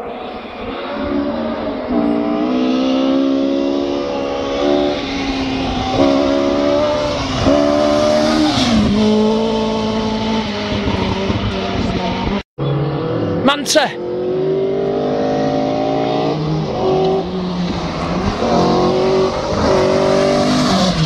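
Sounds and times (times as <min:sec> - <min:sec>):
rally car engine passing: 0:00.0 - 0:21.0.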